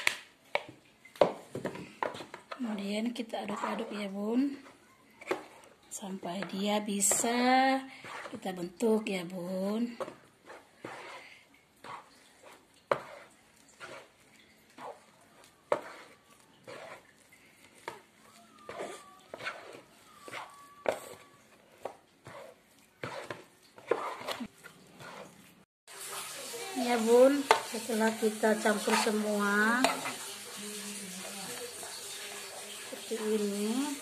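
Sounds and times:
plastic spatula scraping tub: 0:00.5 - 0:26.2, 0:26.8 - 0:34.0.

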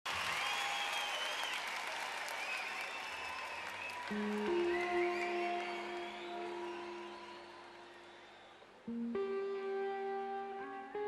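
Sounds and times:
audience applauding: 0:00.1 - 0:08.8.

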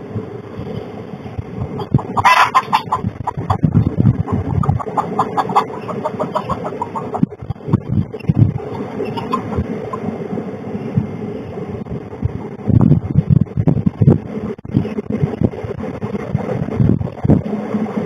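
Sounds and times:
hen clucking: 0:01.6 - 0:10.1
hen squawking: 0:01.7 - 0:10.1.

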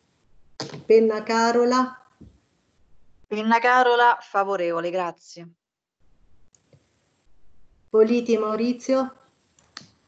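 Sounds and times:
faint line noise: 0:07.2 - 0:08.0.

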